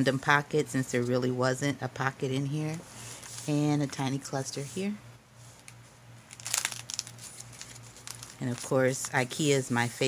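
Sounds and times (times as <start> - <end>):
stiff paper pages crinkling: 6.3 - 9.6.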